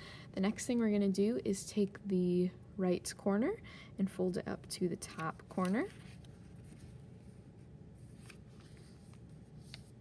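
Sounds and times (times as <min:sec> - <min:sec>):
paper rustling and sliding: 0:05.1 - 0:10.0.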